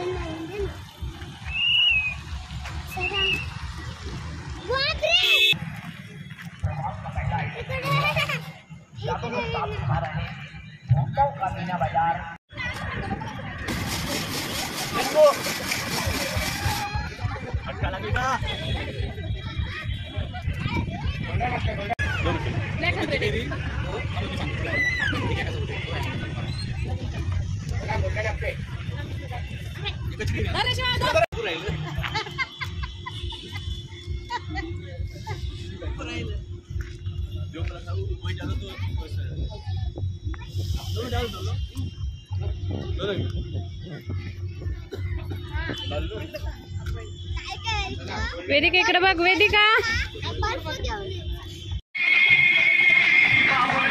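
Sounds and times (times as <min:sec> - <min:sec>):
people talking: 0:12.5 - 0:32.4, 0:37.2 - 0:53.9
ice-shaving machine scraping ice: 0:13.7 - 0:16.8
loud party music with bass beat: 0:52.0 - 0:53.9.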